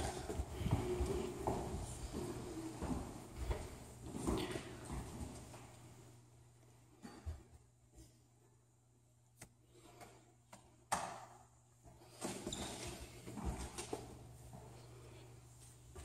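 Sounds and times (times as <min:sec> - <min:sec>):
footsteps on a floor: 0:00.0 - 0:06.0, 0:11.8 - 0:16.0.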